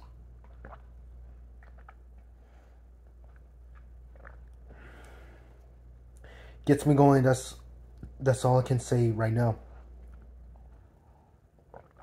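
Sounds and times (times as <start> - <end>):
person gulping and swallowing: 0.0 - 5.7, 10.0 - 12.0
low steady hum: 0.0 - 12.0
soft breath out: 6.2 - 6.6.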